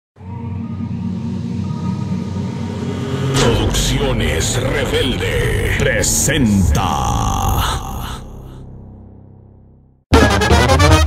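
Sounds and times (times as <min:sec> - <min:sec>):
low rumbling drone: 0:00.2 - 0:10.0
man announcing: 0:03.4 - 0:08.6.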